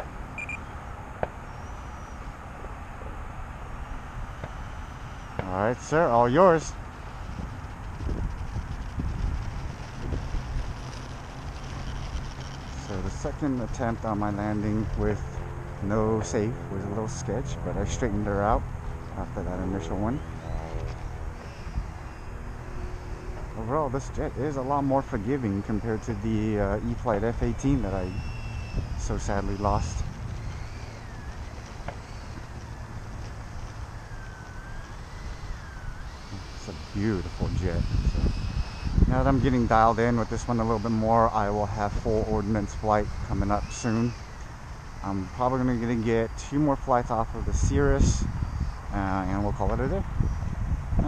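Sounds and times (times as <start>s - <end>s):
electric ducted fan whining: 0.0s - 51.0s
wind buffeting microphone: 4.2s - 51.0s.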